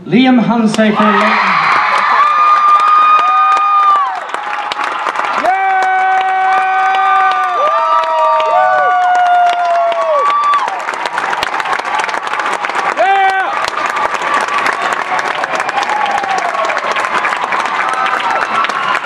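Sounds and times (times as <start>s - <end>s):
audience applauding and cheering: 0.7s - 19.0s.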